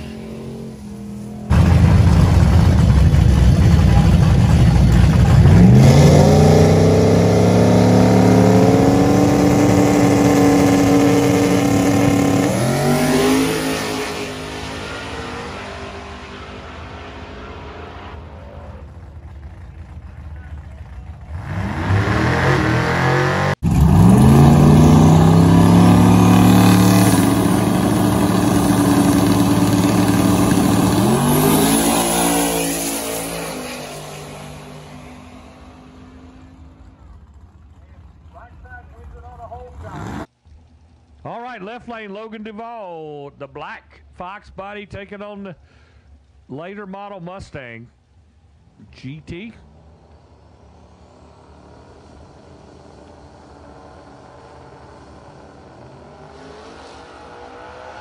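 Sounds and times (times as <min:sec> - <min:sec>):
car engine revving at full throttle: 0:00.0 - 0:18.9, 0:21.3 - 0:36.5, 0:49.8 - 0:58.0.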